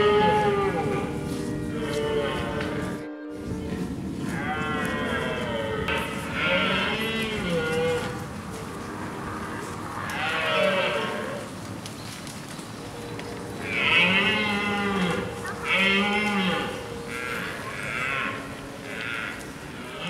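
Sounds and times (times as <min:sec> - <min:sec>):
deer stags roaring: 0:04.2 - 0:11.5, 0:13.6 - 0:20.0.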